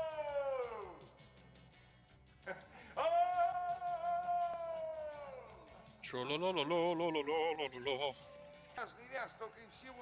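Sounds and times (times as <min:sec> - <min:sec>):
man calling whoa: 0:00.0 - 0:01.0, 0:03.0 - 0:05.6.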